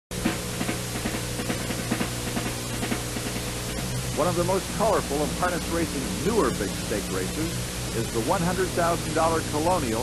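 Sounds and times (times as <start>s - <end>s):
marching drum music: 0.1s - 9.2s
film soundtrack hiss: 0.1s - 10.0s
steady low hum: 0.1s - 10.0s.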